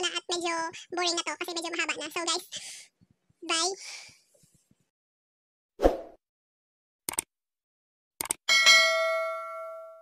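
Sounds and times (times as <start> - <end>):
double mouse-click: 8.2 - 8.4.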